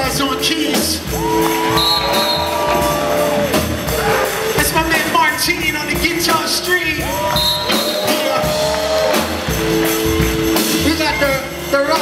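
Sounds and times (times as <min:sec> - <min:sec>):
drum and cymbal hits: 0:00.0 - 0:12.0
live band held notes: 0:00.0 - 0:12.0.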